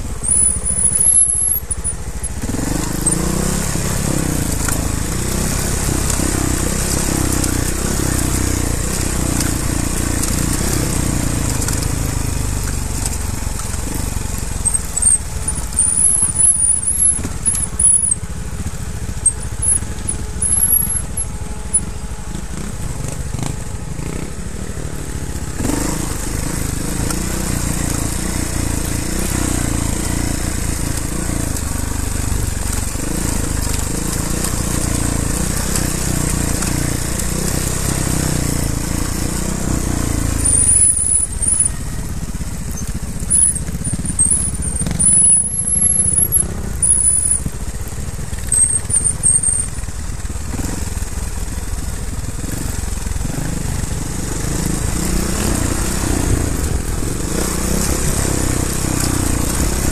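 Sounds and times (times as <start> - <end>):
motorcycle engine running: 0.0 - 59.9
short high-pitched squeaks: 0.2 - 2.1, 14.6 - 18.2, 19.2 - 21.9, 40.4 - 41.8, 42.7 - 47.5, 48.5 - 49.7.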